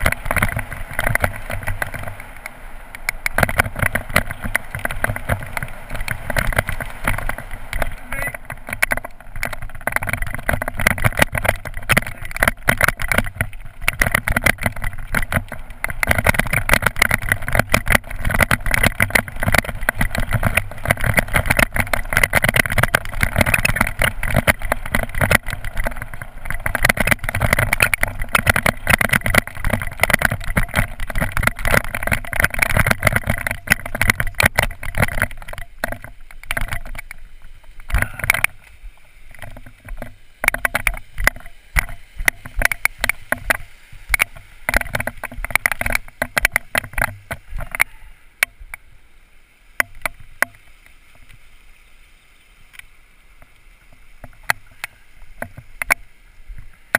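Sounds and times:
bike rattling over gravel: 0.0 - 48.0.

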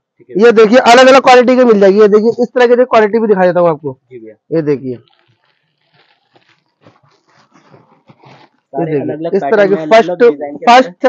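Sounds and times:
packaging rustling and clicking: 5.0 - 8.7.

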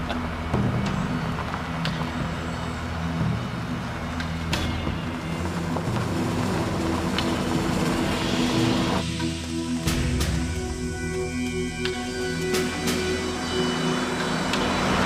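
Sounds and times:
background music: 0.0 - 15.0
truck engine running: 0.0 - 15.0.

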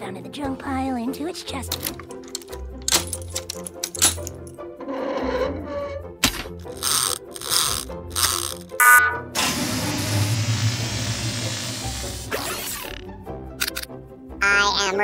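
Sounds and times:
background music: 0.0 - 15.0
short mechanical whirring: 6.6 - 8.8
electronic beep: 8.8 - 9.2.

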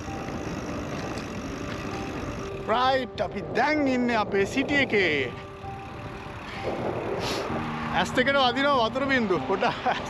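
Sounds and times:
car passing: 5.2 - 10.0.

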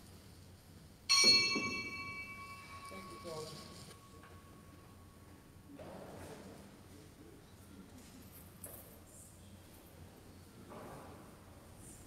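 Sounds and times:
bell ringing: 1.1 - 4.6.

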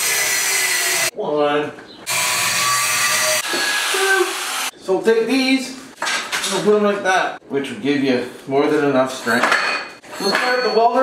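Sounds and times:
angle grinder cutting steel: 0.0 - 1.1, 2.1 - 4.7.

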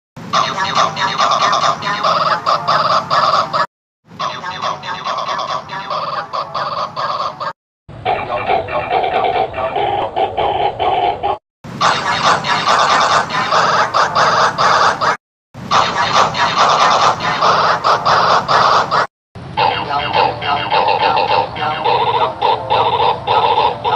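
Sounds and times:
high pitch-shifted cartoon voice: 0.4 - 3.6, 4.2 - 7.0, 11.2 - 23.9
harsh distorted buzzing bursts: 11.8 - 19.1.

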